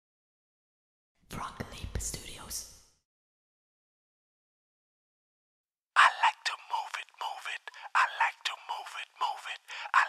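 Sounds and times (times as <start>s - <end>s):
person whispering: 1.3s - 2.8s, 6.0s - 10.0s.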